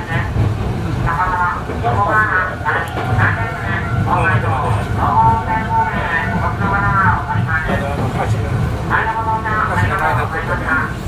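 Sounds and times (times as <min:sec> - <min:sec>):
electric train rumbling on track: 0:00.0 - 0:11.0.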